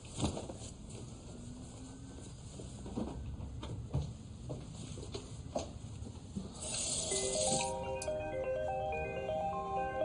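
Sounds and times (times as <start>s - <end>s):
smartphone ringtone melody: 7.0s - 10.0s.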